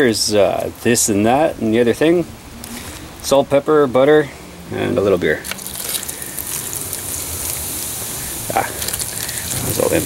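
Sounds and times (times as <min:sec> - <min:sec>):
beer pouring into foil pan: 0:05.4 - 0:10.0.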